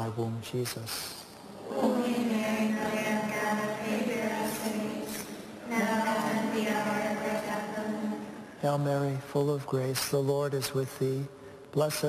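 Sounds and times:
congregation reciting prayer in unison: 1.5s - 8.6s.

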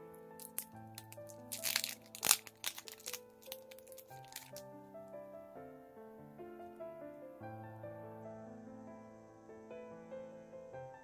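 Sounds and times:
soft piano music: 0.0s - 11.0s
foil packet crinkling: 0.4s - 4.7s.

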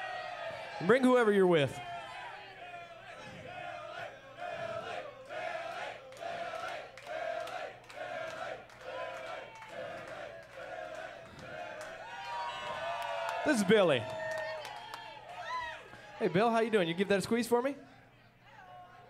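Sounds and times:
crowd chanting in unison: 1.8s - 12.1s.

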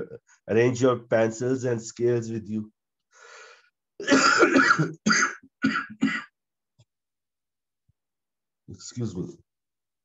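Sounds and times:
man coughing: 4.0s - 6.4s.

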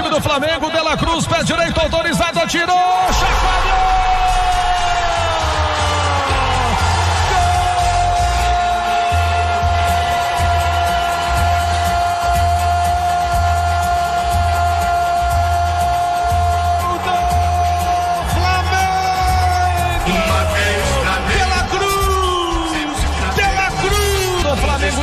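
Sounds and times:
music with steady beat: 4.5s - 25.0s.

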